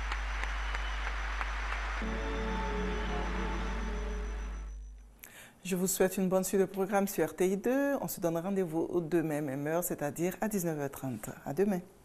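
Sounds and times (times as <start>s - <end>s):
stadium crowd applauding: 0.0s - 4.6s
low steady hum: 0.0s - 6.3s.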